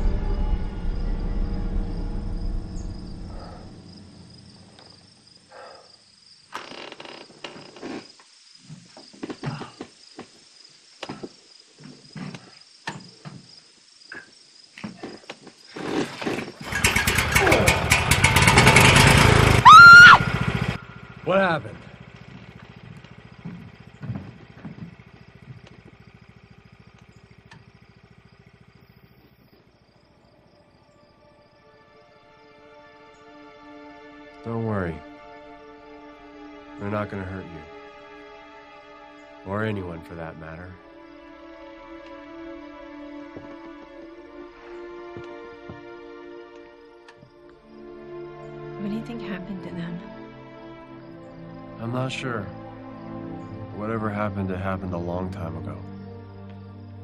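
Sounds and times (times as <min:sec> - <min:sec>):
film score music: 0:00.0 - 0:05.8, 0:16.8 - 0:28.0, 0:30.6 - 0:57.0
small gasoline engine running: 0:15.8 - 0:28.9.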